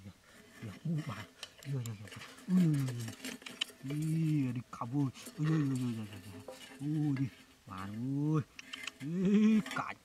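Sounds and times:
tin can scraping on sand: 0.3 - 10.0.

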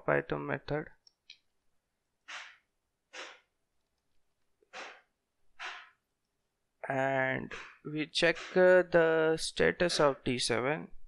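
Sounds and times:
person breathing: 2.3 - 3.5, 4.6 - 6.0, 7.5 - 8.7.

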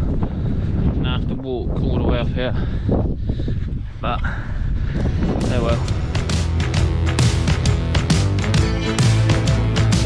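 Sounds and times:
wind buffeting microphone: 0.0 - 6.9.

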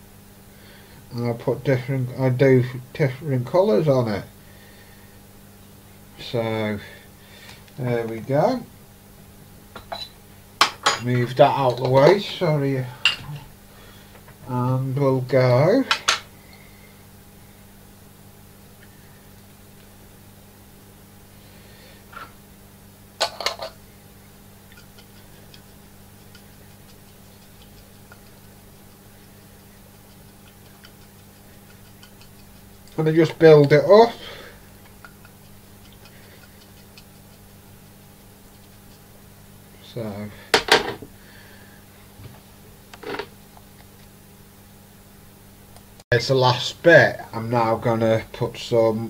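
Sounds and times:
steady low hum: 0.0 - 49.0.

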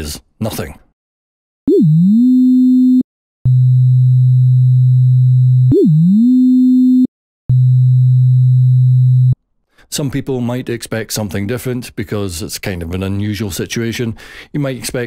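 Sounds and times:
lower steady tone: 1.7 - 9.4.

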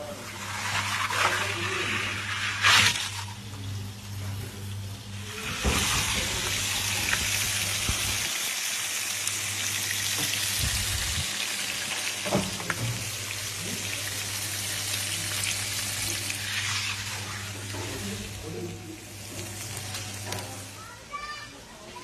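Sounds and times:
food sizzling in hot dishes: 0.0 - 22.0.

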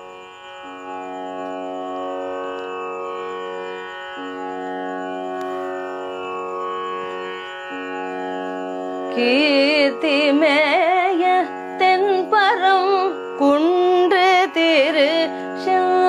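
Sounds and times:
tanpura drone: 0.0 - 16.0.

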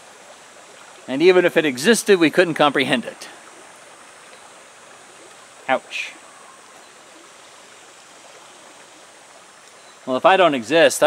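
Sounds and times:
shallow river flowing over rocks: 0.0 - 11.0.

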